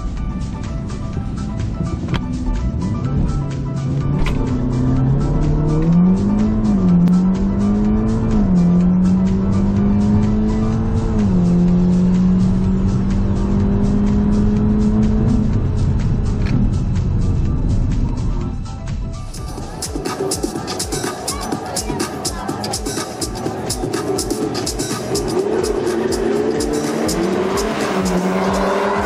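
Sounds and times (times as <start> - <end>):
background music with steady beat: 0.0 - 29.0
car engine at full throttle: 0.0 - 29.0.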